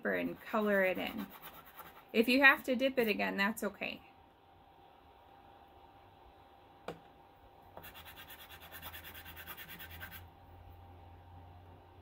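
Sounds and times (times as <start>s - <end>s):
chalk scribbling on paper: 0.1s - 2.1s, 7.8s - 10.2s.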